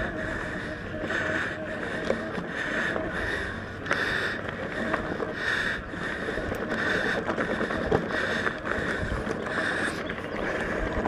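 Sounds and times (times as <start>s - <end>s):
bike tyre rumble on dirt: 0.0s - 11.0s.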